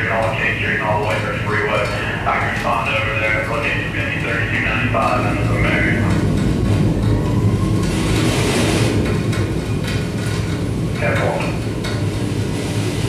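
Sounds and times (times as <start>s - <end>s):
scattered clicks: 0.0s - 12.0s.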